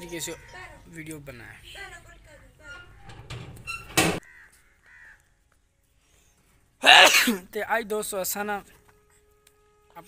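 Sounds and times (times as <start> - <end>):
bird cawing harshly: 4.2 - 5.2.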